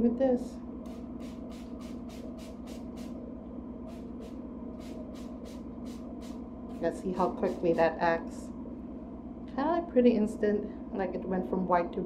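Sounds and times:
low hum: 0:00.0 - 0:11.0
spray bottle squirting: 0:00.9 - 0:03.2, 0:03.9 - 0:07.9.

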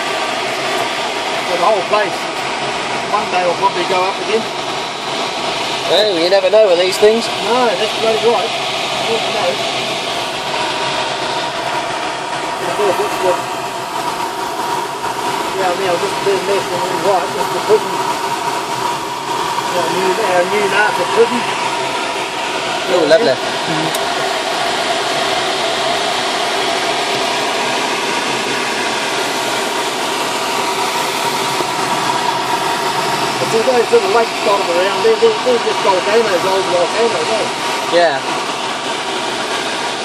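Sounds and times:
airflow rushing around canopy: 0:00.0 - 0:40.0.

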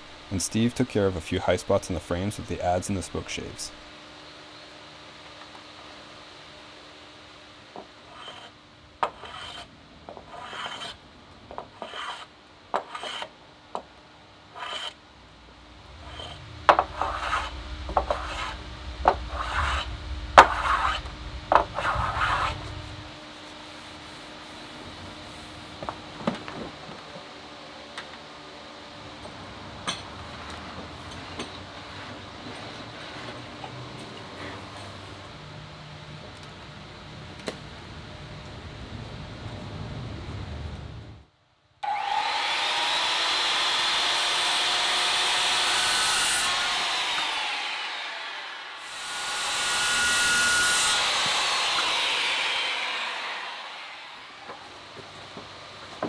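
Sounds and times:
wood being shaved by hand: 0:08.0 - 0:08.5, 0:09.1 - 0:11.0, 0:11.6 - 0:13.3, 0:14.5 - 0:15.0, 0:16.0 - 0:25.8, 0:41.8 - 0:54.7.

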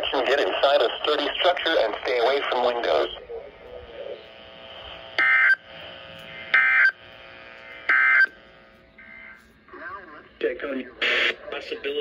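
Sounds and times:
faint radio hiss and hum: 0:00.0 - 0:12.0
harsh digital data tones: 0:05.2 - 0:07.0, 0:07.6 - 0:08.4.

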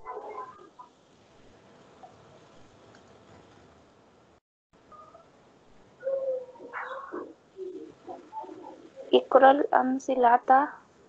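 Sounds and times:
bird cooing: 0:06.0 - 0:09.3.

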